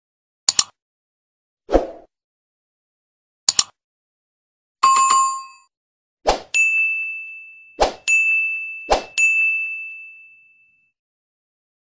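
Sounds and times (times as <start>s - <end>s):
bell-like ding: 4.8s - 5.7s, 6.5s - 11.0s
high chime: 6.5s - 11.0s.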